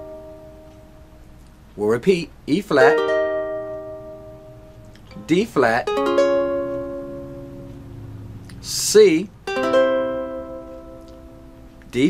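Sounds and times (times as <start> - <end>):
ukulele chord strummed: 0.0 - 1.3, 2.8 - 8.5, 9.4 - 12.0.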